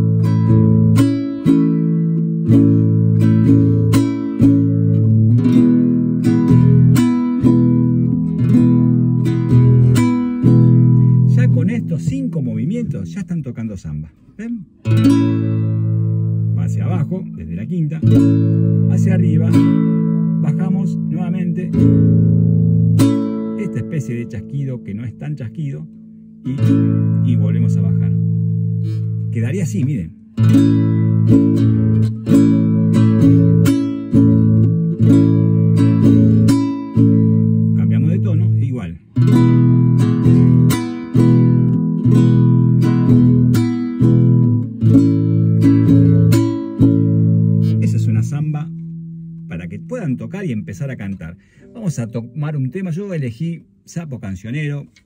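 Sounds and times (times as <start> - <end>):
nylon-string guitar strumming: 0.0 - 13.5, 14.1 - 53.9.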